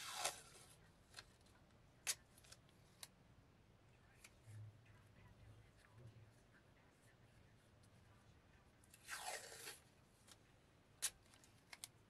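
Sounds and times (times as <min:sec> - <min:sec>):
masking tape ripping off roll: 0:00.0 - 0:00.5, 0:09.0 - 0:09.8.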